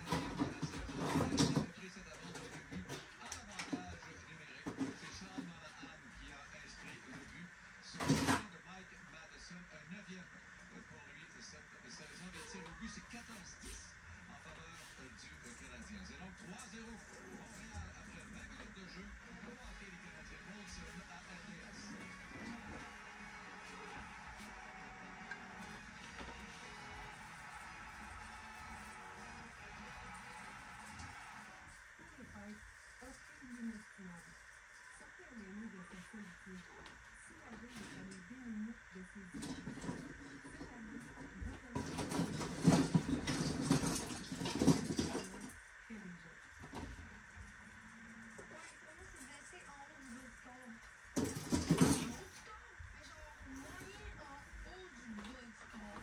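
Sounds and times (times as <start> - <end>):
faint television commentary: 0.0 - 56.0
television music: 0.0 - 56.0.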